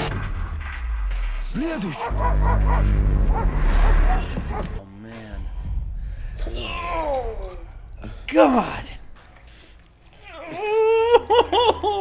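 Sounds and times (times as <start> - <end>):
deep steady rumble: 0.0 - 4.8, 5.4 - 8.3.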